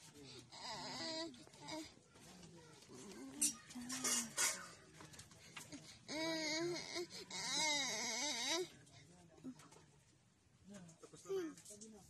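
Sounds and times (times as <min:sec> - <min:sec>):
boy whimpering and sobbing: 0:00.5 - 0:02.0, 0:06.1 - 0:08.7.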